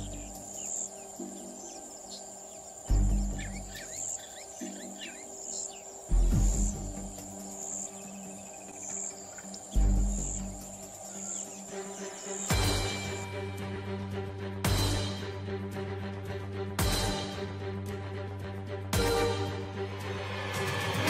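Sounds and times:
bird chirps: 0:00.0 - 0:13.4
high insect trill: 0:00.0 - 0:21.0.

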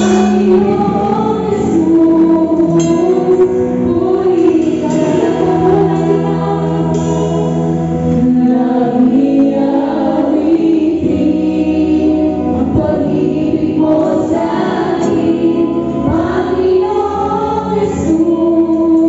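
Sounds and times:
women singing into microphones: 0:00.0 - 0:19.0.

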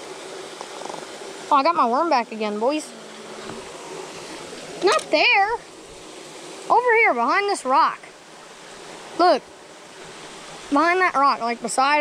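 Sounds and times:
creek trickling over rocks: 0:00.0 - 0:12.0
person speaking: 0:04.8 - 0:05.6, 0:06.7 - 0:08.0, 0:10.7 - 0:12.0.

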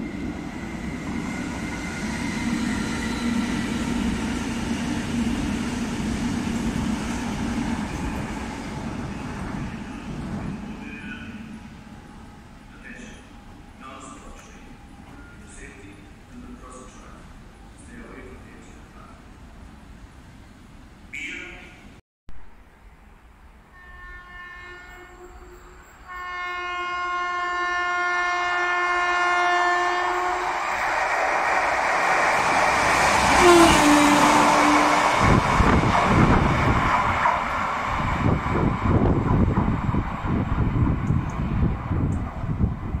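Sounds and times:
locomotive rushing past: 0:00.0 - 0:17.9, 0:29.8 - 0:43.0
locomotive horn blast: 0:23.7 - 0:30.5, 0:33.4 - 0:35.2.

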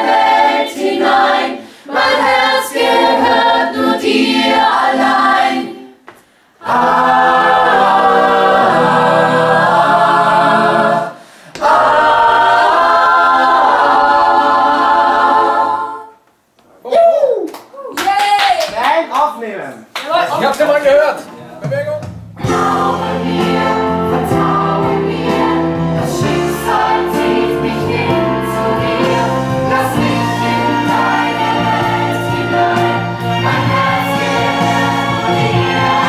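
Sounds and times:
mixed choir singing a cappella: 0:00.0 - 0:06.0, 0:06.6 - 0:16.2, 0:22.4 - 0:36.0.

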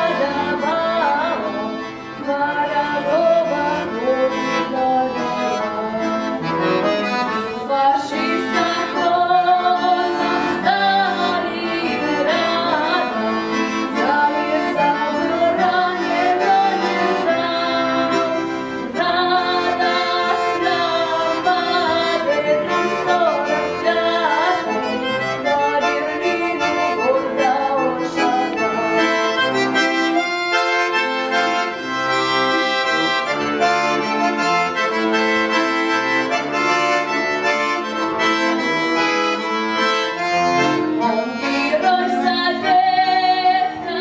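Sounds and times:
button accordion playing: 0:00.0 - 0:44.0.

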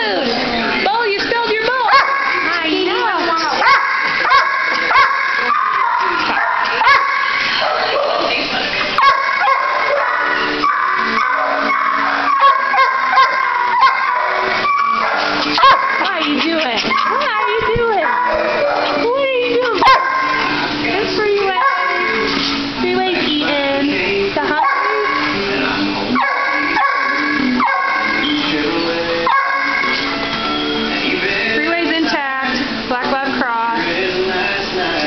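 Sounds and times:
dogs barking and whining: 0:01.7 - 0:22.8, 0:24.5 - 0:30.7.

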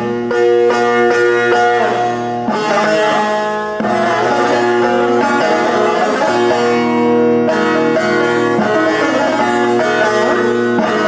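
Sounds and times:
long-necked lute plucked: 0:00.0 - 0:11.0.

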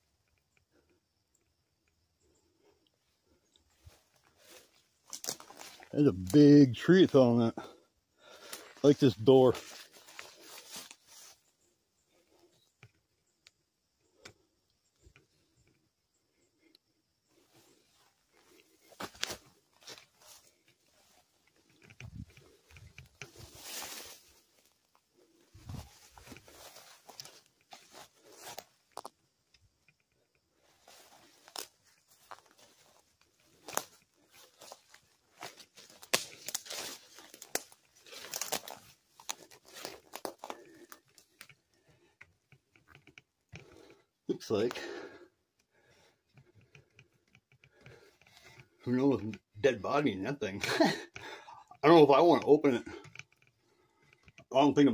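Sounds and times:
footsteps crunching through dry weeds: 0:03.8 - 0:06.3, 0:08.4 - 0:11.5, 0:17.5 - 0:29.1, 0:30.6 - 0:41.5.

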